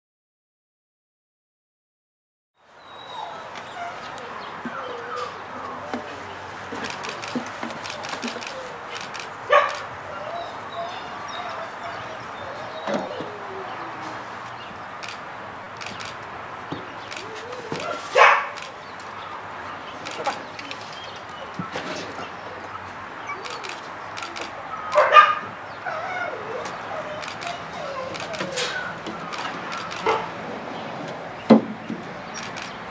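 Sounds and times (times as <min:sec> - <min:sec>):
outdoor background noise: 0:02.6 - 0:32.9
puppy whining: 0:02.8 - 0:06.2, 0:09.6 - 0:14.2, 0:17.2 - 0:18.2, 0:22.2 - 0:25.1, 0:25.8 - 0:30.3
young dog barking: 0:09.5 - 0:14.0, 0:17.6 - 0:18.7, 0:22.7 - 0:23.8, 0:24.4 - 0:29.0, 0:29.8 - 0:30.4.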